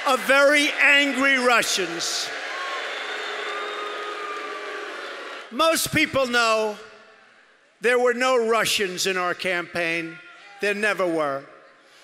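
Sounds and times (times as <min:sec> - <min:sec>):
crowd cheering and shouting: 0:00.0 - 0:05.8.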